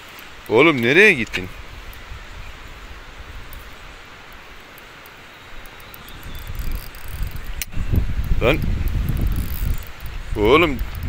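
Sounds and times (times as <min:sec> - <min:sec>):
wind buffeting microphone: 0:00.6 - 0:04.7, 0:05.5 - 0:11.0
microphone handling noise: 0:06.1 - 0:11.0.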